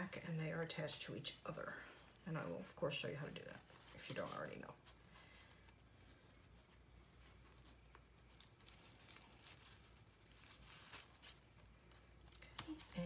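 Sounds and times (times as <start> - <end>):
paper and ribbon rustling: 0.0 - 13.0.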